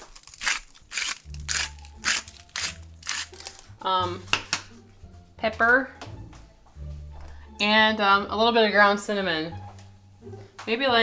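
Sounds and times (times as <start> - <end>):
salt grinder crunching clicks: 0.0 - 3.6.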